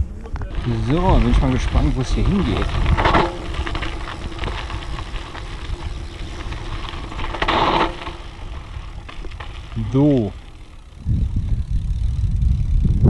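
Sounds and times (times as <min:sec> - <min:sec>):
bike tyres rolling on dirt: 0:00.0 - 0:13.0
gravel crackle: 0:00.0 - 0:13.0
bike frame rattle: 0:00.4 - 0:13.0.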